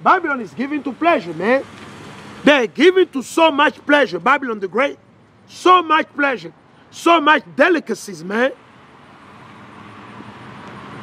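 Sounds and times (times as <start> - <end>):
cars driving past: 0.0 - 11.0.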